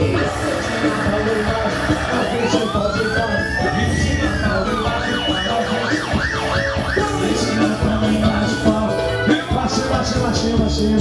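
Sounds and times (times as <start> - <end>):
live band dance music: 0.0 - 11.0
siren-like wail: 0.2 - 8.6.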